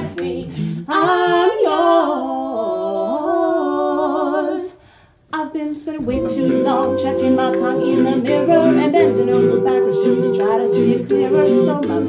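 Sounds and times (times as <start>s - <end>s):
a cappella group singing harmonies: 0.0s - 12.0s
lead voice singing: 5.6s - 12.0s
sung bass line: 6.0s - 11.8s.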